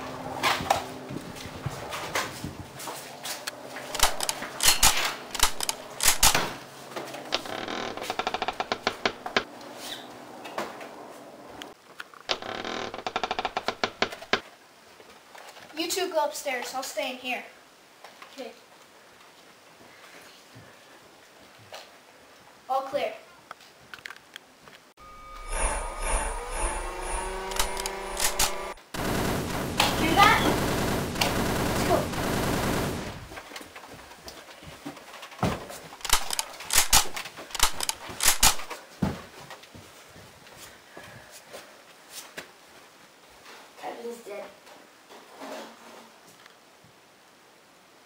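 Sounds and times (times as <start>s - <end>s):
sharp knocks and clicks: 7.3s - 9.5s, 12.3s - 14.4s
footsteps on carpet: 39.0s - 42.5s.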